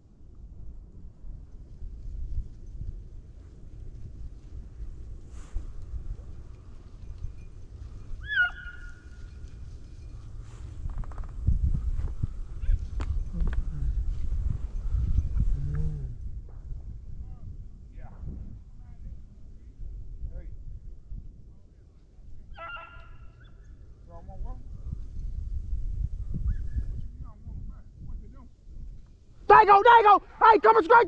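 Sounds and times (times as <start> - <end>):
wind rumbling on microphone: 0.0 - 30.7
distant dog yelping: 8.2 - 9.1, 22.5 - 23.6.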